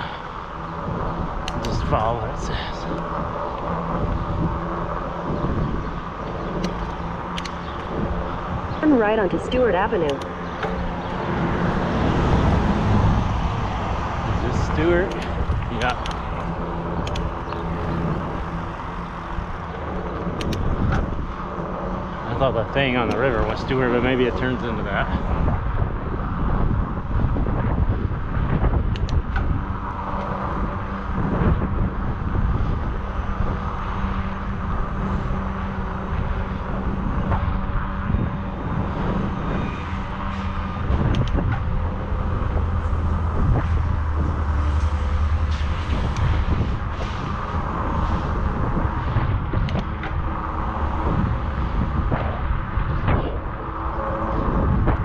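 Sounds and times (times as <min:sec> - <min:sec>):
idling truck engines hum: 0:00.0 - 0:26.9
low hum: 0:00.0 - 0:55.0
wind and road rumble: 0:00.0 - 0:55.0
light clicks: 0:06.6 - 0:07.9.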